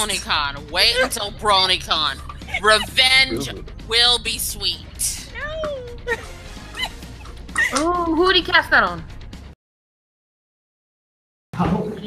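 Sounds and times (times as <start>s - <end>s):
low steady hum: 0.0s - 3.7s
high-pitched whining vocal sounds: 2.5s - 3.6s.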